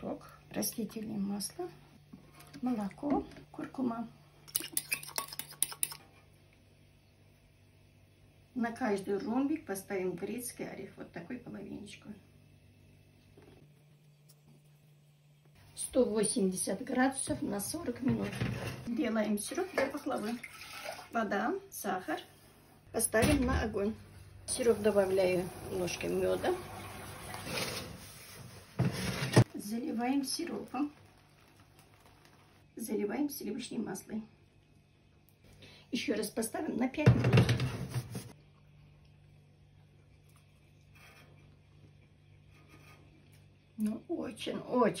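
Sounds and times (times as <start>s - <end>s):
spoon stirring in pot: 4.4s - 6.2s.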